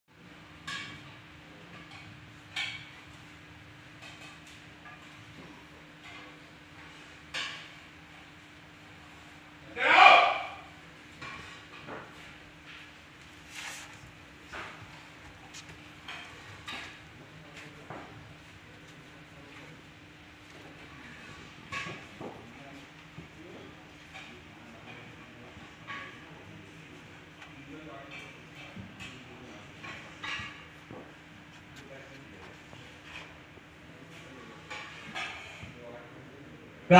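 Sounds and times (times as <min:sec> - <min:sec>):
loud short vocal call: 0:09.8 - 0:10.7
faint scuffling: 0:13.2 - 0:14.2
soft rustling: 0:13.2 - 0:14.2.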